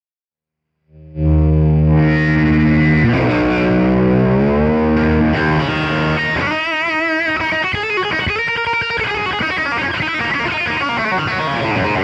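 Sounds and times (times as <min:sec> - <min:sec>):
overdriven electric guitar notes: 0:00.9 - 0:12.0.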